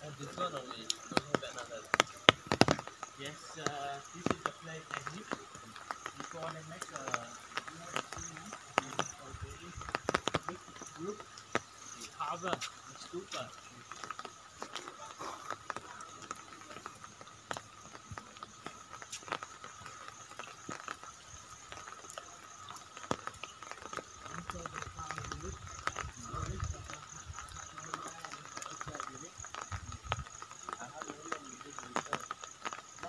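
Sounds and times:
faint background voices: 0:14.6 - 0:18.8.

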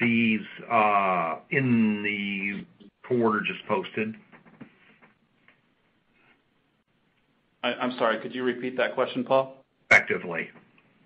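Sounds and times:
man talking on phone line: 0:07.6 - 0:10.5.

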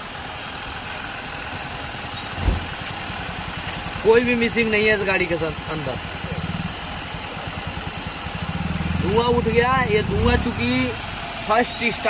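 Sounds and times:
car engine idling: 0:00.0 - 0:12.0
low thump: 0:02.4 - 0:03.0.

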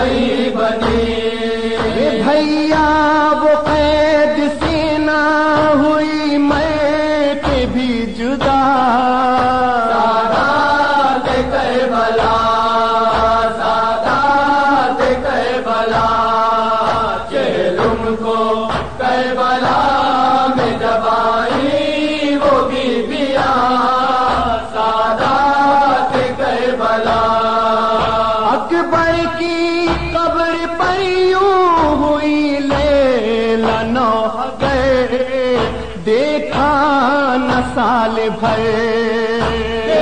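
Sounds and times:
lament chanted over loudspeakers: 0:00.0 - 0:40.0.

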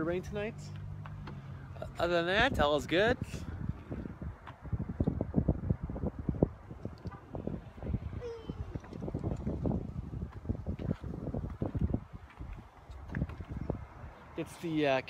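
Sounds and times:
wind buffeting microphone: 0:00.8 - 0:15.0.

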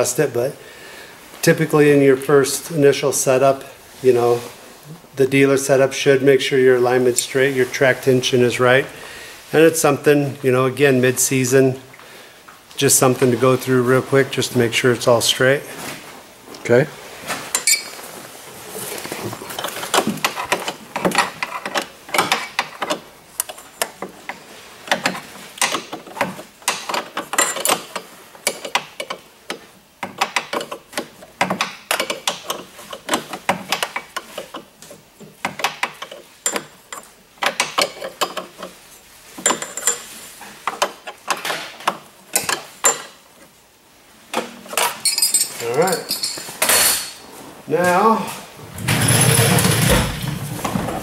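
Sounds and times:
metal tools clicking and clinking: 0:17.5 - 0:17.9, 0:26.7 - 0:29.2, 0:39.4 - 0:40.1, 0:44.8 - 0:47.2.

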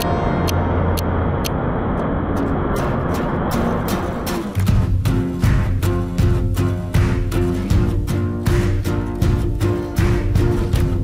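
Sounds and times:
ferry engines running: 0:00.0 - 0:11.0
background music with a beat: 0:03.5 - 0:11.0.

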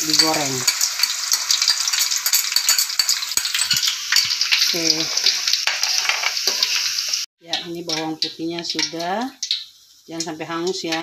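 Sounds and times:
garlic sizzling in oil: 0:00.0 - 0:11.0.

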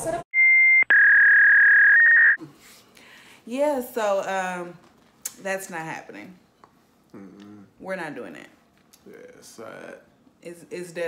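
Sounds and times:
censor bleep: 0:00.4 - 0:02.4.

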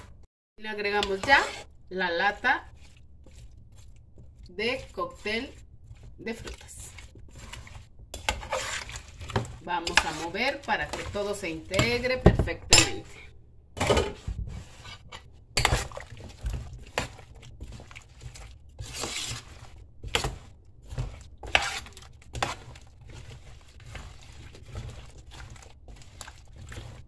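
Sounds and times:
spoon scraping metal pot: 0:00.8 - 0:27.0.

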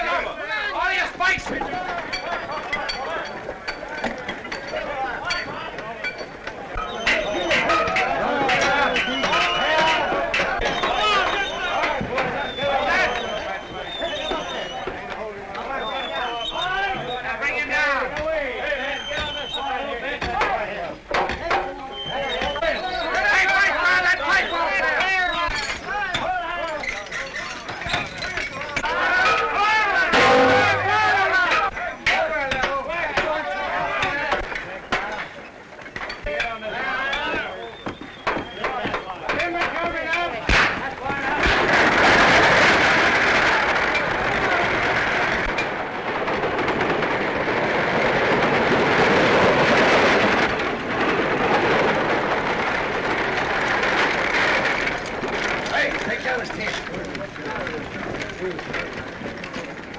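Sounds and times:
hooves and wheels clattering: 0:00.0 - 0:59.9
voices calling: 0:00.0 - 0:59.9.

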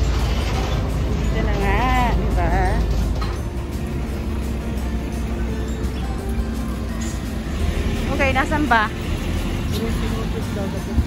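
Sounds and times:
motor vehicles idling: 0:00.0 - 0:11.0.

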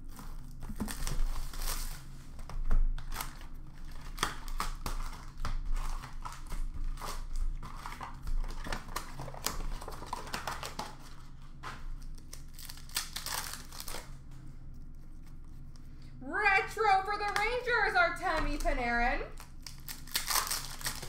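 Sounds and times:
card pack wrappers crinkling: 0:00.0 - 0:02.1, 0:03.0 - 0:15.7, 0:19.4 - 0:21.0.

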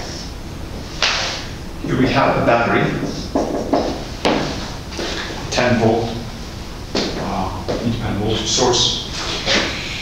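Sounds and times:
man speaking: 0:05.5 - 0:06.3, 0:07.2 - 0:09.3.

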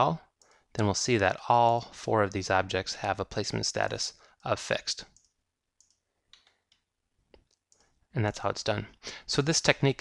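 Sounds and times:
faint computer mouse clicks: 0:05.1 - 0:07.9.

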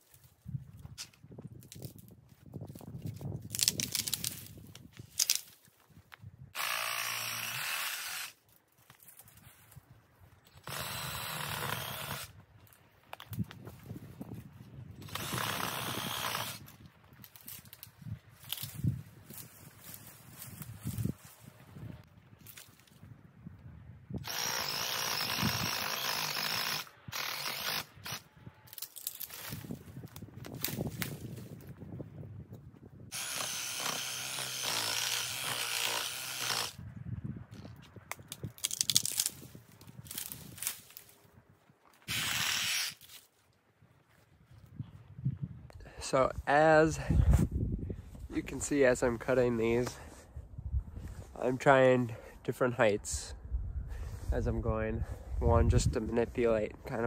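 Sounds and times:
brush cracking and rustling: 0:00.0 - 0:06.4, 0:08.4 - 0:10.7, 0:12.4 - 0:14.8, 0:16.6 - 0:23.2, 0:28.0 - 0:32.9, 0:37.3 - 0:44.8
power saw cutting trees: 0:06.6 - 0:08.4, 0:10.6 - 0:12.3, 0:15.0 - 0:16.6, 0:24.2 - 0:28.2, 0:33.1 - 0:36.8, 0:42.1 - 0:43.0.

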